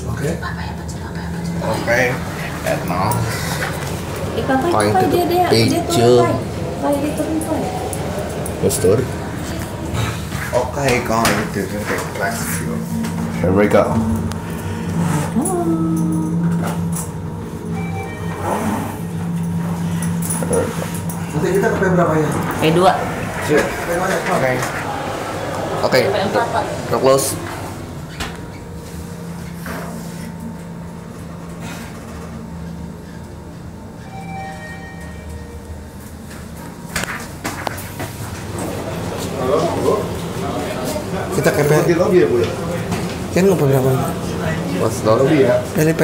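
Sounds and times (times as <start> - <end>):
elevator running with low hum: 0.0 - 46.0
voices: 0.5 - 17.1, 20.4 - 28.4
elevator doors sliding open: 16.3 - 30.0.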